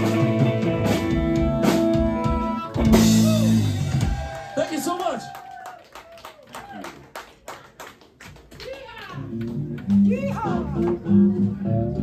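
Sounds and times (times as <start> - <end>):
electric guitar playing: 0.0 - 4.1, 9.2 - 12.0
audience clapping and cheering: 3.6 - 10.7.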